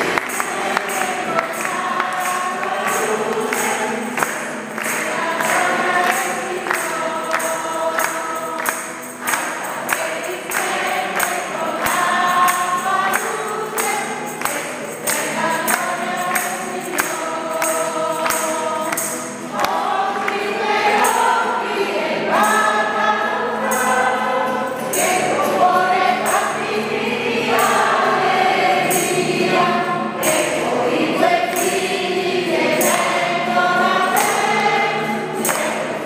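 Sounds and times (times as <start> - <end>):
choir singing a hymn: 0.0 - 36.0
instrumental accompaniment: 0.0 - 36.0.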